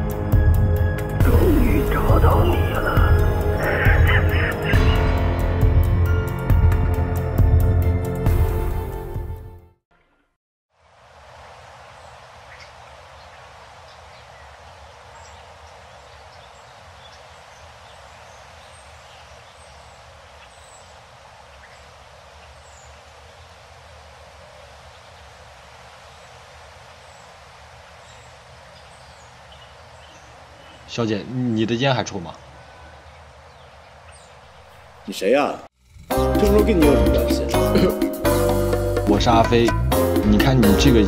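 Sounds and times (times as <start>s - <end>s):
hiss-like outdoor background: 0.0s - 5.5s, 10.7s - 41.0s.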